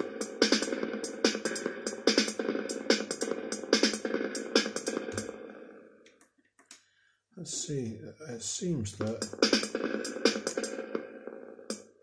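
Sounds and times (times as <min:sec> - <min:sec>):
drum machine beat with reverb: 0:00.0 - 0:05.7, 0:08.3 - 0:12.0.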